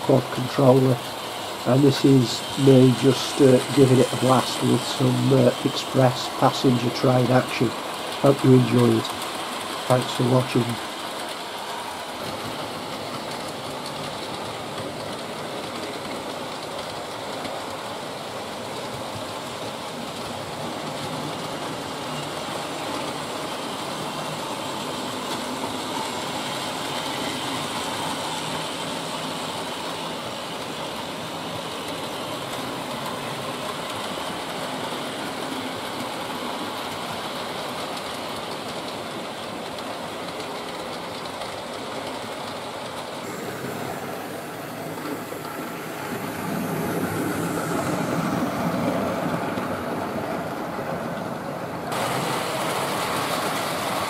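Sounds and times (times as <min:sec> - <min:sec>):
model train motors whirring: 0:00.0 - 0:49.6, 0:51.9 - 0:54.0
wheels rattling on rails: 0:00.0 - 0:54.0.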